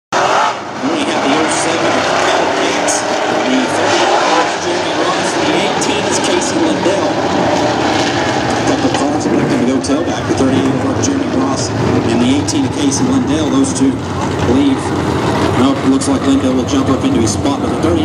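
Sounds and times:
race car engines running: 0.1 - 18.0.

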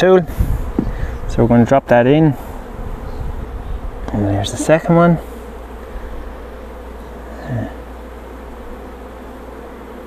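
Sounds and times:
honeybees buzzing: 0.0 - 10.0.

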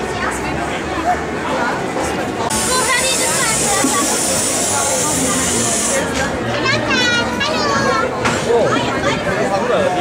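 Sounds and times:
children talking and calling out: 0.0 - 10.0
crowd chatter: 0.0 - 10.0.

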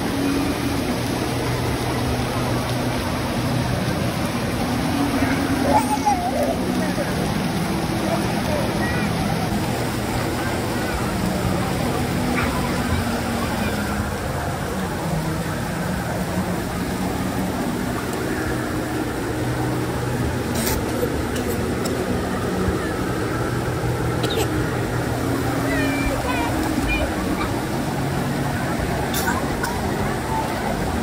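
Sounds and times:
crowd voices: 0.0 - 31.0
water rushing in pool features: 0.0 - 31.0.

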